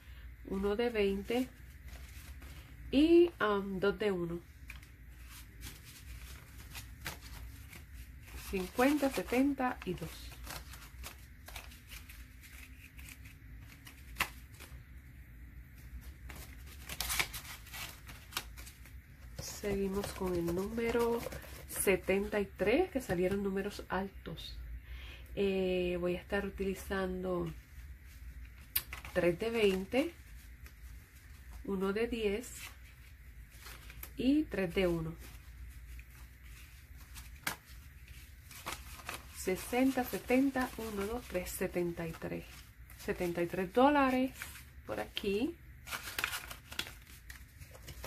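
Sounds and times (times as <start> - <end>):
paper bills rustling: 4.6 - 14.9, 15.8 - 22.3, 27.4 - 45.2, 45.8 - 48.0.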